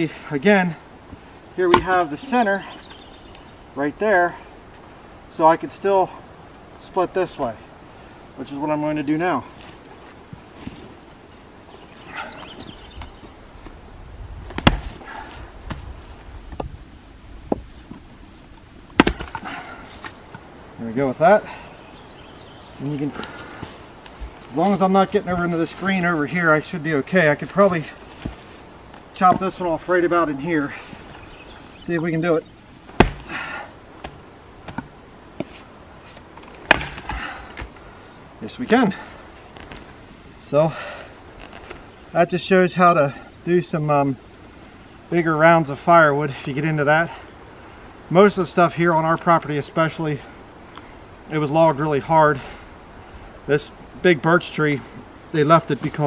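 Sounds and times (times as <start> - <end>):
axe chopping wood: 1.7 - 2.1, 14.5 - 15.8, 18.9 - 19.5, 32.9 - 35.0, 36.6 - 37.7
wood splitting: 1.7 - 2.3, 14.5 - 15.9, 18.9 - 20.2, 32.9 - 37.8.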